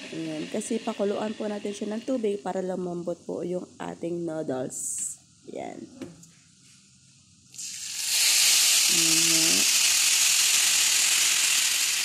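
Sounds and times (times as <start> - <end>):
water sizzling in hot pan: 0.0 - 2.3, 7.6 - 12.0.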